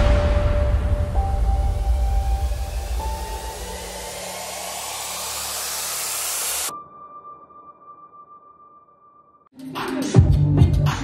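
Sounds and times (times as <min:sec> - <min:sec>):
synthesised noise riser: 0:01.1 - 0:06.7.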